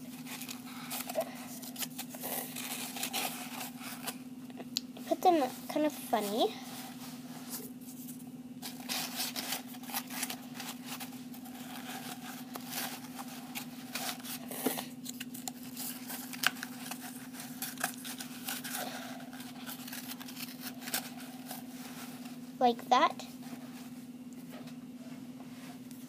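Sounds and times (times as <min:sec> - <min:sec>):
cardboard rustling and crinkling: 0:00.0 - 0:04.2, 0:05.3 - 0:22.4
steady low hum: 0:00.0 - 0:26.0.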